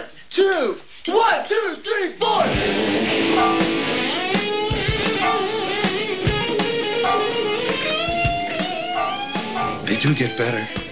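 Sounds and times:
drums: 0.0 - 10.9
count-in: 2.3 - 10.5
distorted electric guitar: 2.3 - 10.9.

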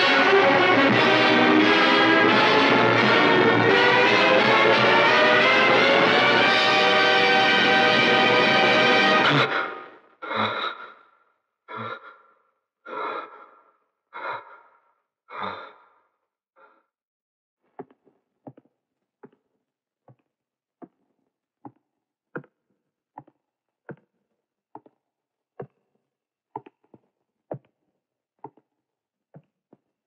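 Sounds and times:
orchestral score with brass: 0.0 - 9.9
man breathing heavily: 9.2 - 16.0.

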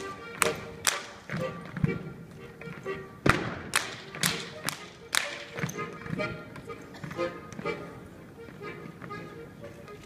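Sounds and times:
faint dance music: 0.0 - 10.0
hand slaps and claps: 0.4 - 1.2, 3.3 - 5.5.

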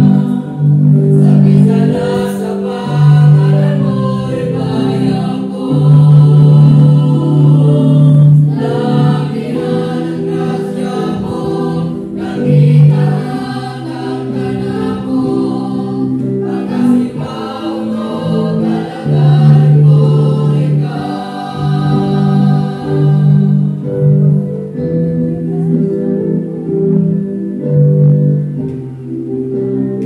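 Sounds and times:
mixed choir singing gospel: 0.0 - 25.0.

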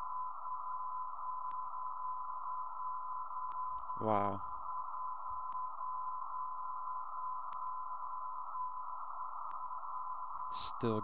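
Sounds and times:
steady radio tone: 0.0 - 11.0
radio static: 4.0 - 4.4, 10.5 - 11.0
faint clicks: 7.4 - 7.7.

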